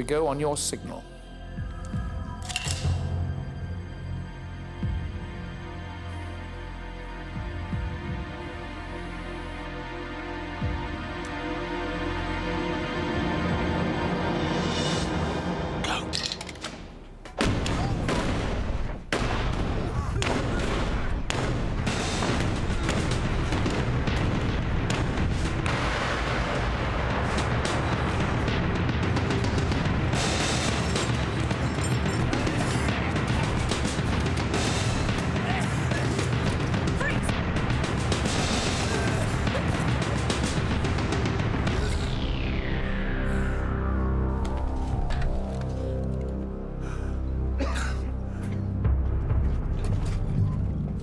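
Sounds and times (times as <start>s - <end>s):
action music score: 0.0s - 51.0s
gunfire: 17.4s - 28.6s
booms: 17.4s - 29.1s.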